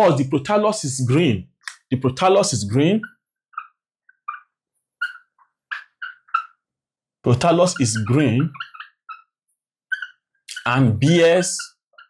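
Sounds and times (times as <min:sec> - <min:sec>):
marker squeaking on whiteboard: 0:00.0 - 0:12.0.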